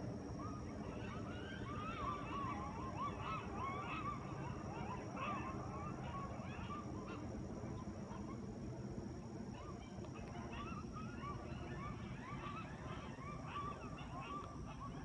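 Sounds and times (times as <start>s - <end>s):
coyotes yipping and howling: 0.0s - 15.0s.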